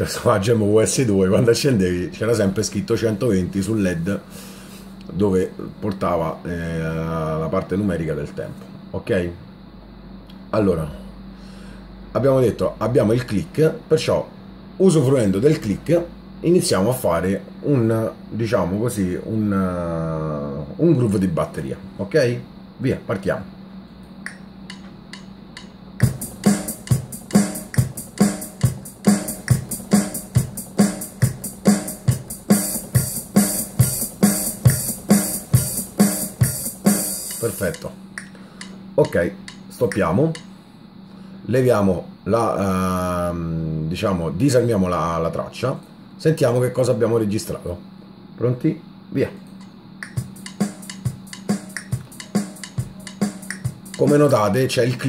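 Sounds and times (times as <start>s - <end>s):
low electrical hum: 0.0s - 55.0s
click track: 24.2s - 25.8s, 37.3s - 40.5s, 49.5s - 54.0s
keyboard kick drum beat: 26.0s - 37.9s, 50.0s - 54.5s
hi-hat or cymbal: 26.0s - 38.7s, 50.0s - 54.6s.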